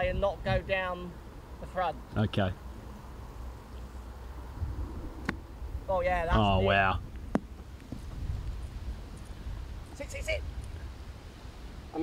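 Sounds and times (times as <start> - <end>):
wind rumble on microphone: 0.0 - 0.9, 4.4 - 12.0.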